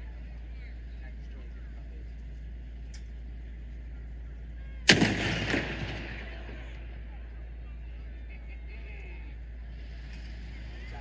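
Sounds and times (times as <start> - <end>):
rumbling echo: 4.8 - 7.4
loud explosive boom: 4.9 - 6.6.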